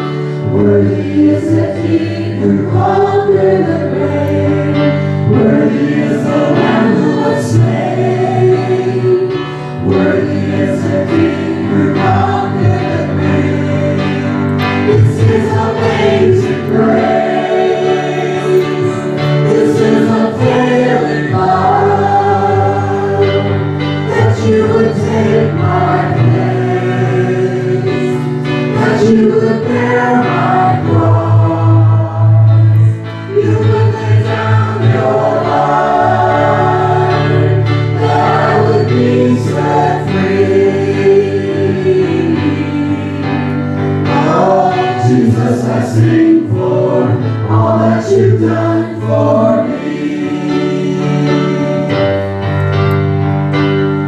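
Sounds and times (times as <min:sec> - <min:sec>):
group of voices singing: 0:00.0 - 0:52.4
electric keyboard: 0:00.0 - 0:54.0.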